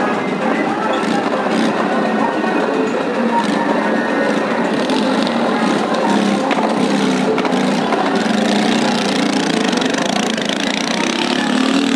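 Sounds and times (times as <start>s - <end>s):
fairground din: 0.0s - 11.9s.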